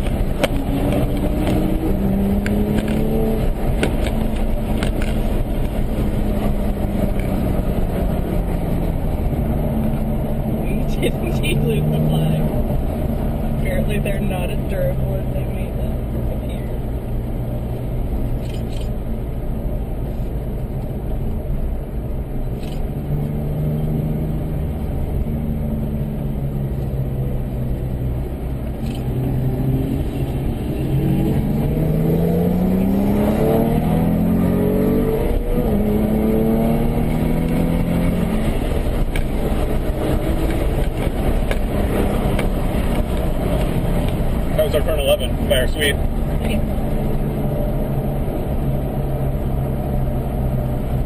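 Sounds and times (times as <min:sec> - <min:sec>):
car engine accelerating: 0:00.0 - 0:51.0.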